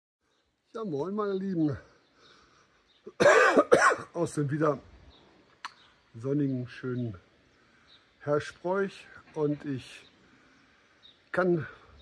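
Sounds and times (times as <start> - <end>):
man coughing: 3.1 - 4.2.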